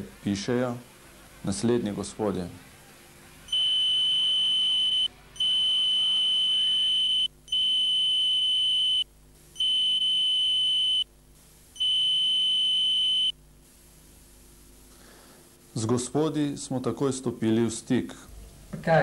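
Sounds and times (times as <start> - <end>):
electronic censor bleeps: 3.5 - 11.1, 11.8 - 13.4.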